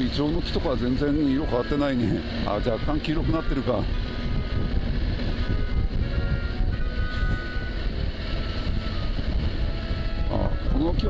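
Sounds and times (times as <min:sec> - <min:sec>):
motorcycle engine running: 0:00.0 - 0:11.0
wind on microphone: 0:00.0 - 0:11.0.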